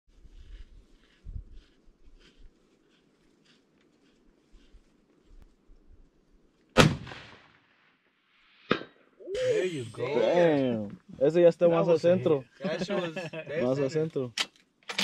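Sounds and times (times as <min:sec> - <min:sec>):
rifle shot with echo: 0:06.8 - 0:07.9.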